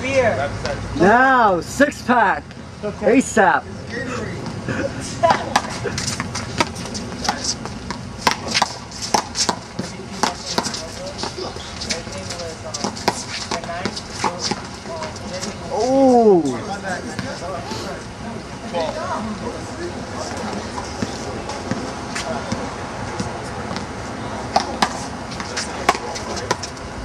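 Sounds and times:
man shouting: 0:15.7 - 0:16.7.

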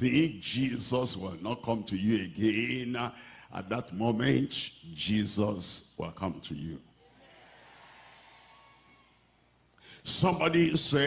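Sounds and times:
person breathing: 0:03.1 - 0:03.5, 0:09.7 - 0:10.1.

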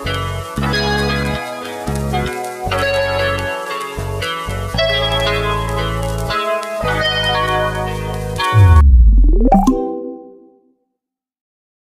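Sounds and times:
deep bass boom: 0:08.6 - 0:09.7
sharp hit: 0:08.6 - 0:10.1
upward sweeping tone: 0:08.6 - 0:10.5.

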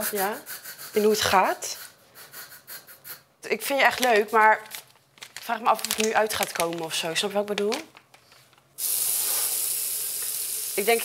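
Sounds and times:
water running into sink: 0:08.8 - 0:11.0.

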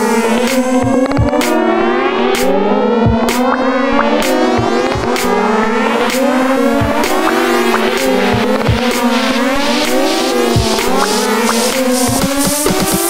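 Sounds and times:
techno kick drum and percussion: 0:00.0 - 0:01.7, 0:02.8 - 0:13.0
sliding synth lines: 0:00.0 - 0:13.0.

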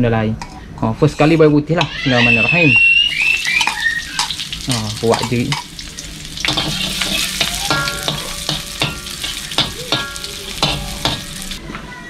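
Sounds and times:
wok ringing: 0:01.8 - 0:11.6
garlic sizzling in hot oil: 0:02.2 - 0:11.6
spatula scraping metal wok: 0:03.6 - 0:11.6.

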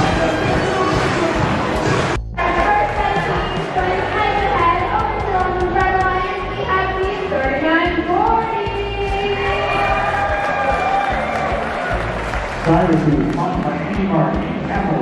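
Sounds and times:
music over public address: 0:00.0 - 0:15.0.

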